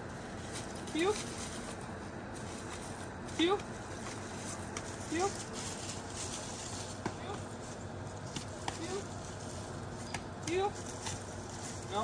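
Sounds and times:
footsteps on leafy grass: 0:00.0 - 0:12.0.

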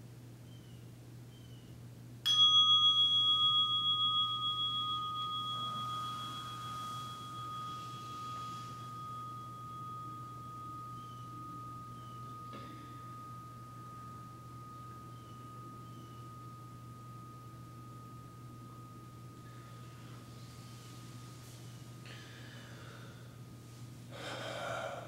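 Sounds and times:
low steady hum: 0:00.0 - 0:25.0
meditation bell ringing: 0:02.2 - 0:23.6
faint high-pitched tone: 0:02.3 - 0:21.8.

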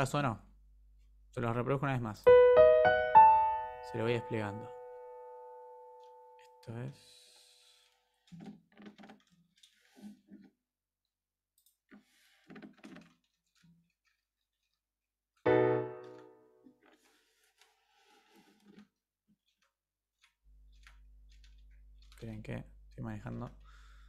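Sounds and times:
piano chord: 0:02.3 - 0:06.5, 0:15.5 - 0:16.4.

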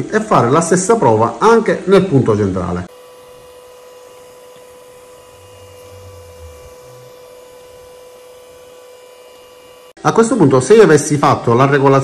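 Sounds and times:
three d printer high whine: 0:00.9 - 0:10.0
low drone of motors: 0:03.0 - 0:09.9.

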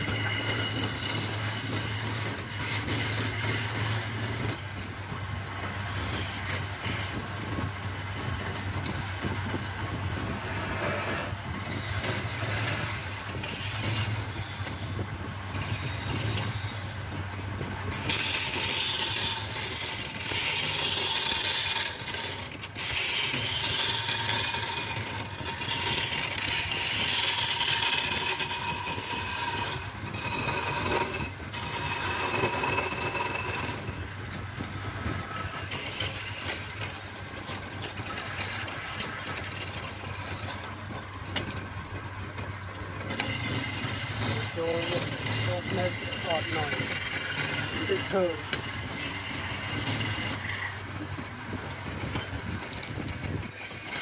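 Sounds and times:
chisel cutting spinning wood: 0:00.0 - 0:54.0
wood lathe humming: 0:00.0 - 0:54.0.

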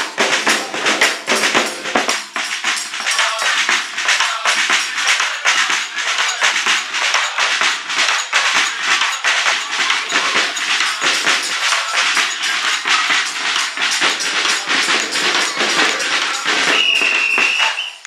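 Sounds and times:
people clapping in rhythm: 0:00.0 - 0:18.0
people singing a song: 0:00.0 - 0:18.0.

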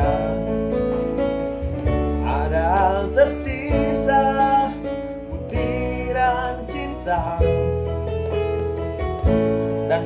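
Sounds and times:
person singing: 0:00.0 - 0:00.9, 0:02.0 - 0:07.9
acoustic guitar: 0:00.0 - 0:10.0.

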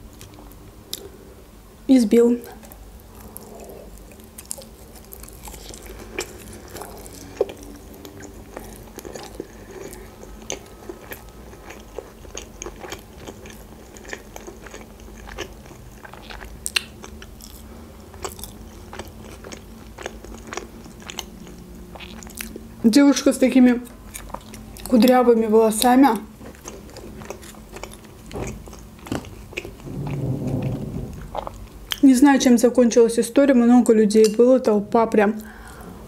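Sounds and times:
person chewing food: 0:02.6 - 0:22.6, 0:24.1 - 0:25.0, 0:26.4 - 0:30.2.

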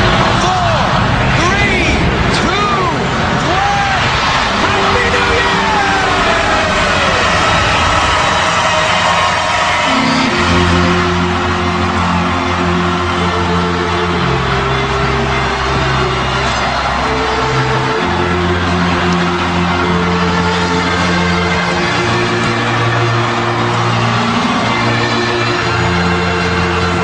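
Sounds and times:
large crowd celebrating: 0:00.0 - 0:27.0.

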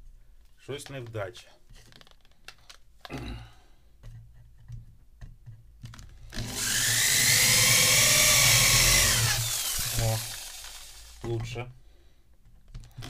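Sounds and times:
electric drill boring: 0:06.3 - 0:11.2.

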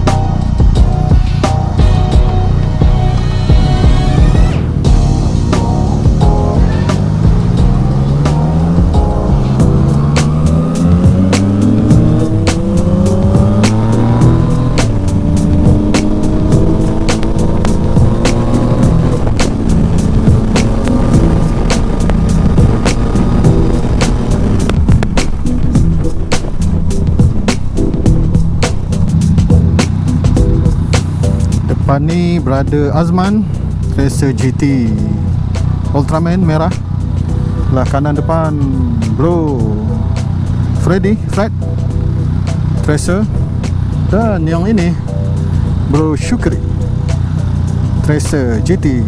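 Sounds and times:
background music with steady beat: 0:00.0 - 0:49.0
motorcycle engine accelerating: 0:00.0 - 0:49.0.

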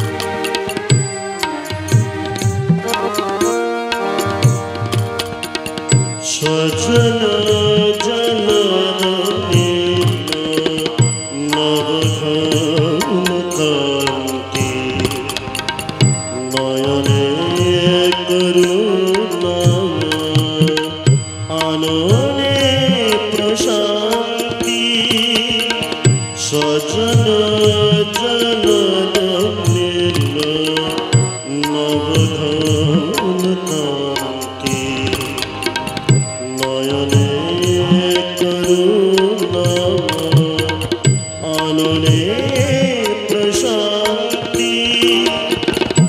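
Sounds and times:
drum beats: 0:00.0 - 0:46.0
harmonium: 0:00.0 - 0:46.0
keyboard: 0:00.0 - 0:46.0
person singing devotional melody: 0:00.0 - 0:46.0.

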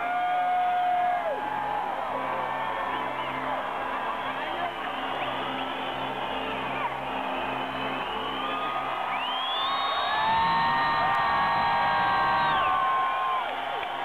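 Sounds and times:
crowd cheering and whooping: 0:00.0 - 0:14.0
long high held notes: 0:03.0 - 0:13.8.

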